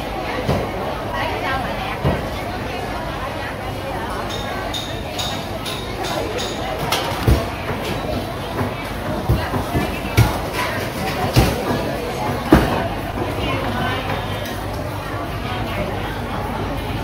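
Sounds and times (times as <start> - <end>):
market chatter: 0.0 - 17.0.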